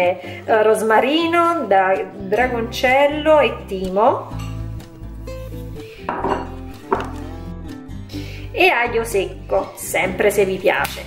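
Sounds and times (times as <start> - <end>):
plucked string music: 4.3 - 8.1
kitchenware knock: 6.1 - 7.2.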